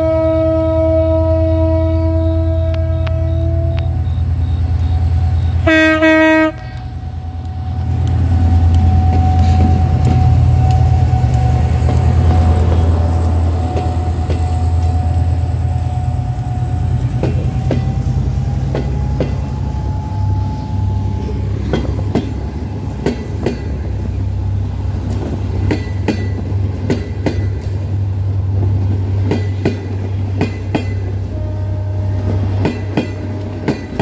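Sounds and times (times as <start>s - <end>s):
locomotive horn: 0.0s - 16.8s, 31.1s - 34.0s
diesel engine drone: 0.0s - 23.0s
train coaches rolling by: 0.0s - 34.0s.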